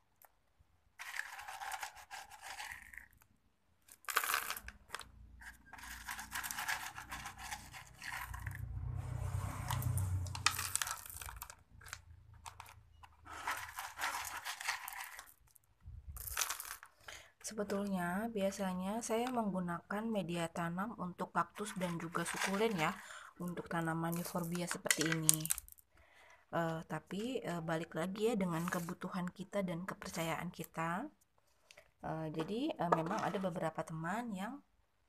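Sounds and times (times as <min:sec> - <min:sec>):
pebbles rattling in plastic pot: 0:01.0 - 0:08.7, 0:09.5 - 0:19.6, 0:21.4 - 0:25.8, 0:28.4 - 0:29.1, 0:32.3 - 0:33.8.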